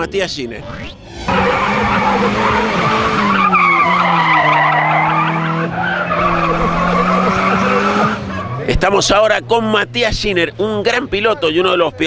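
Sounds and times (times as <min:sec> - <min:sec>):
tyres skidding: 0:00.9 - 0:12.0
car engine at high revs: 0:01.0 - 0:10.8.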